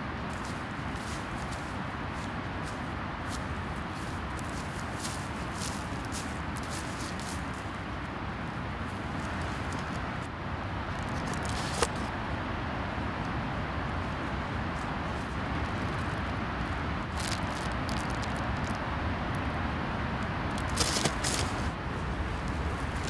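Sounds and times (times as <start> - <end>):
rustles in dry grass and leaves: 0.0 - 12.3, 13.0 - 19.5, 20.4 - 23.0
outdoor background noise: 0.0 - 23.0.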